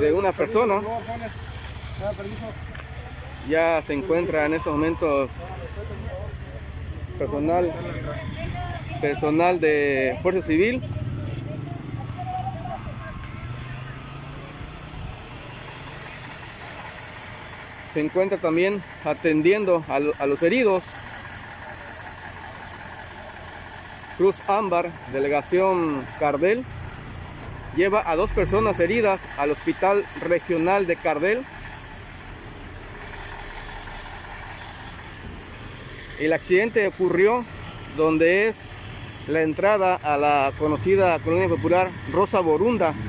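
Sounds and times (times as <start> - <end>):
engine idling: 0.0 - 43.0
outdoor background noise: 0.0 - 43.0
road traffic rumble: 0.0 - 43.0.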